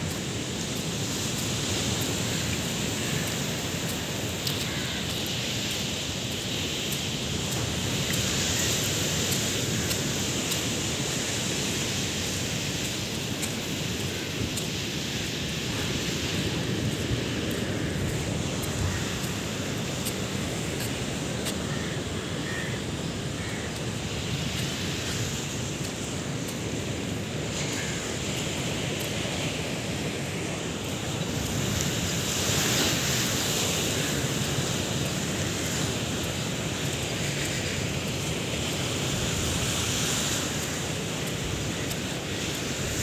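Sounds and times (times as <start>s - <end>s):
sea surf: 0.0s - 43.0s.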